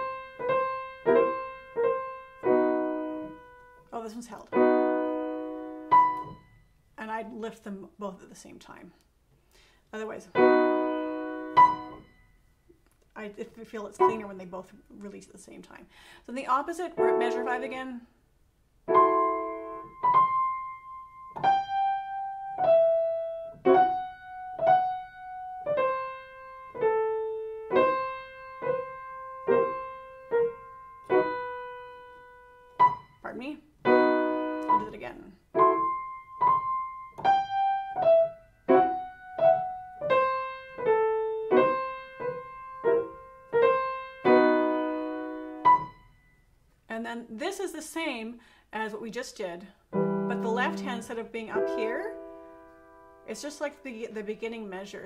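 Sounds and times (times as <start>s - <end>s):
slow piano notes and chords: 0.0s - 6.7s, 10.4s - 12.4s, 14.0s - 14.3s, 18.9s - 46.4s, 49.9s - 53.9s.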